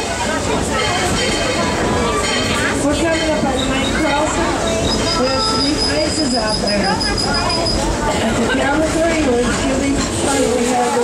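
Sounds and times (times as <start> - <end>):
train rolling rumble: 0.0 - 11.0
high wheel squeal: 3.2 - 8.2.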